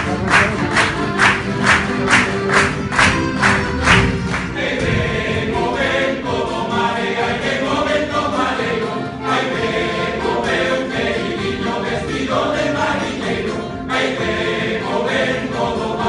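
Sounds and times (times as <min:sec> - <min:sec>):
sharp rhythmic claps: 0:00.0 - 0:05.0
guitars: 0:00.0 - 0:05.7
accordion: 0:00.0 - 0:16.0
male group singing in chorus: 0:04.4 - 0:16.0.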